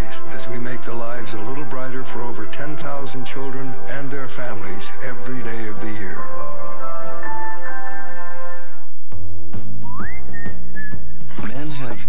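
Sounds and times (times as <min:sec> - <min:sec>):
low steady bass beat: 0:08.9 - 0:12.0
whistled tune: 0:09.8 - 0:11.3.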